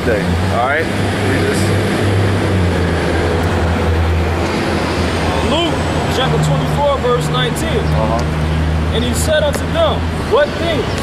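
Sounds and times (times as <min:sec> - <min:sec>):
road noise: 0:00.0 - 0:11.0
vehicle engine rumble: 0:00.0 - 0:11.0.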